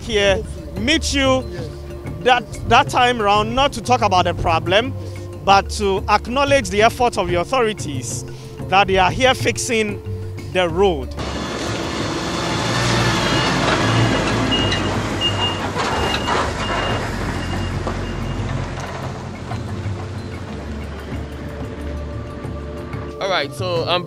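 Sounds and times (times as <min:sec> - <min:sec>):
background music: 0:00.0 - 0:24.0
car driving on rough road: 0:11.1 - 0:23.1.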